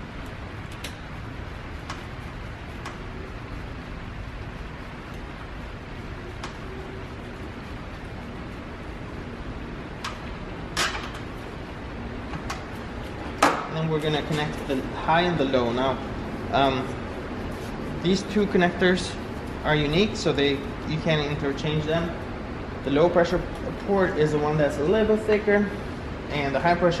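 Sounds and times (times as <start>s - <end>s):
room noise: 0.0s - 27.0s.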